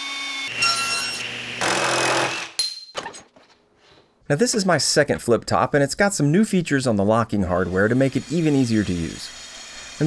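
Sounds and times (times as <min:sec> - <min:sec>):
cordless drill boring through wood: 0:00.0 - 0:02.6, 0:07.7 - 0:10.0.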